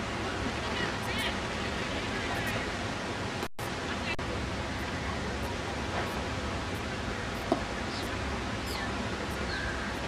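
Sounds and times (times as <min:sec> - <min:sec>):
outdoor noise: 0:00.0 - 0:10.0.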